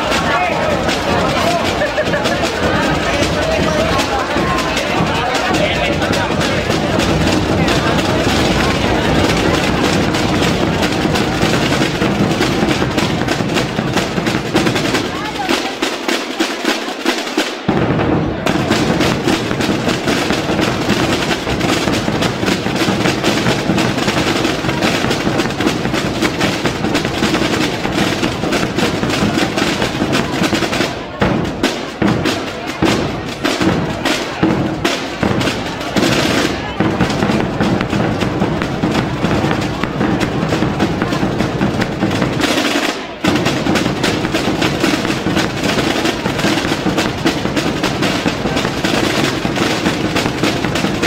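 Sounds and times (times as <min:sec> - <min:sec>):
snare drums playing: 0:00.0 - 0:51.0
bass drum strokes: 0:17.6 - 0:51.0.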